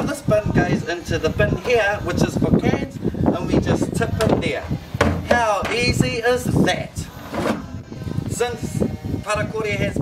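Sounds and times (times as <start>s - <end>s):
man speaking: 3.4s - 7.0s.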